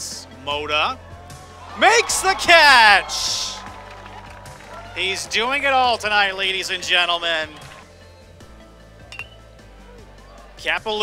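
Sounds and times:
faint background music: 0.0 - 11.0
metal bat hitting ball: 9.1 - 9.4.

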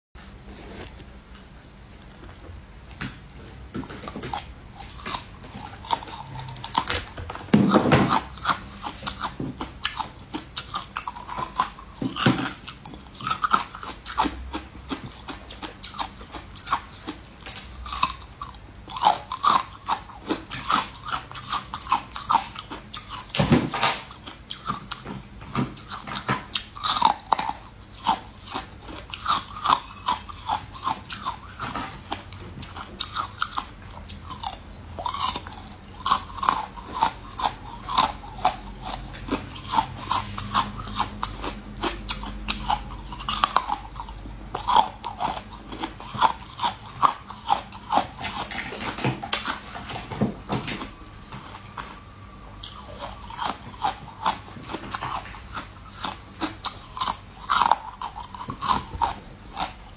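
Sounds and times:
biting and chewing cake: 1.9 - 59.9.

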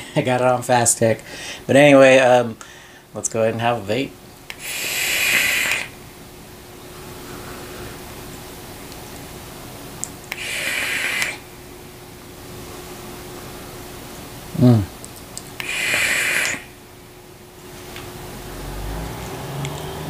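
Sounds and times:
faint steady hiss: 0.0 - 20.0
airy vaping hiss: 4.5 - 6.0, 10.3 - 11.5, 15.6 - 16.8.

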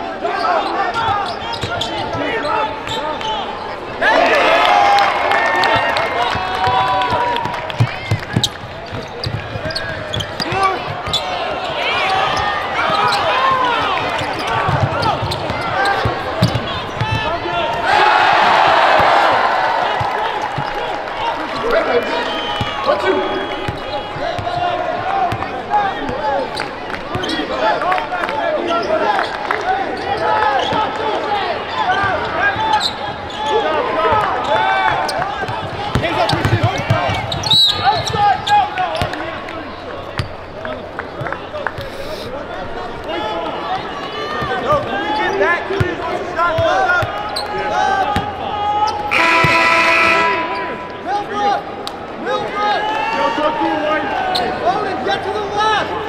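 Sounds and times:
voices calling out in arena: 0.0 - 56.0.

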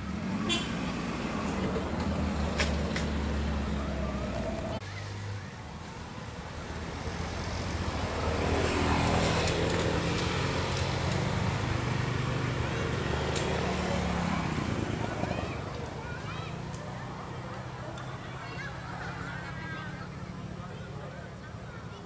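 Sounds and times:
motor engine running: 0.0 - 4.8
murmur of voices: 3.3 - 8.1, 11.8 - 22.0.

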